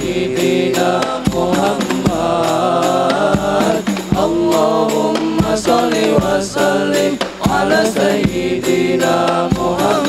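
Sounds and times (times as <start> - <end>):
boys singing in unison: 0.0 - 10.0.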